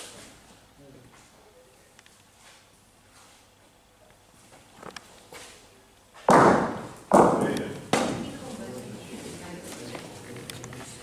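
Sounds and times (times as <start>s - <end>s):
bocce balls clacking: 6.3s - 8.4s.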